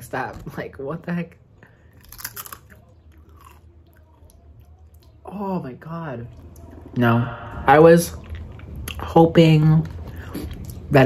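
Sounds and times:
tortilla chip crunching: 0:01.8 - 0:05.3.

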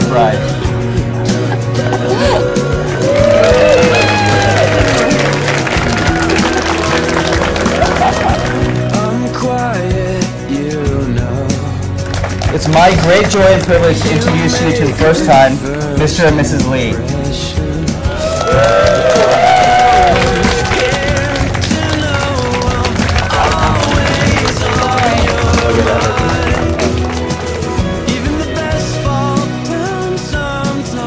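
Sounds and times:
overlapping voices: 0:00.0 - 0:09.6, 0:11.6 - 0:29.7
people applauding and cheering: 0:00.0 - 0:10.0, 0:11.6 - 0:16.6, 0:17.9 - 0:30.1
background music: 0:00.0 - 0:31.0.

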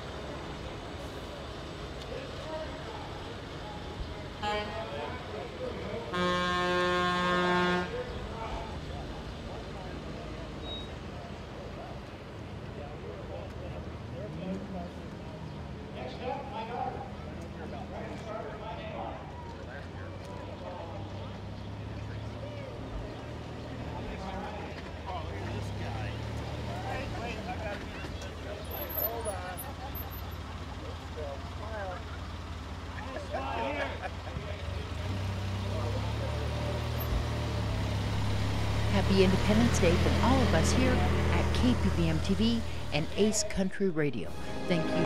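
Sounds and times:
car horn honking: 0:04.4 - 0:05.1, 0:06.1 - 0:08.1, 0:38.1 - 0:45.0
utility vehicle engine running: 0:23.1 - 0:43.4
people talking: 0:38.7 - 0:45.0.

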